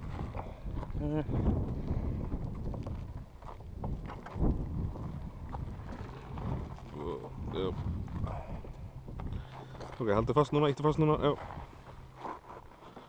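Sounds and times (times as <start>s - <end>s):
wind on microphone: 0.0s - 9.5s
wheelchair rumbling over dirt: 0.0s - 10.3s, 11.2s - 13.0s
low voices: 6.0s - 8.8s.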